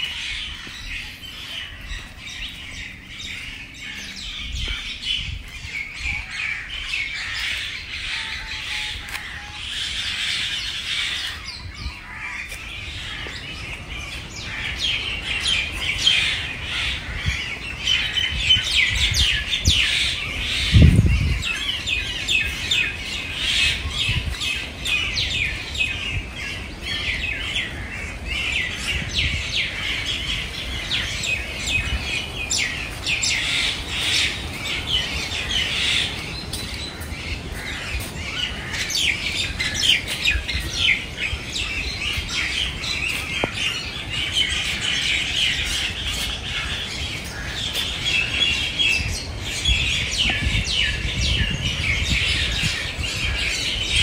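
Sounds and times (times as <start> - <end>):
birds chirping and calling: 0.0 - 54.0.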